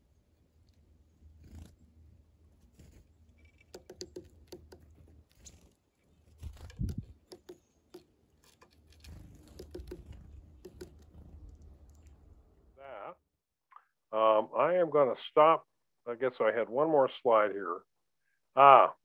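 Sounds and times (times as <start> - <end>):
birds pecking at seed cake: 0.0 - 12.7.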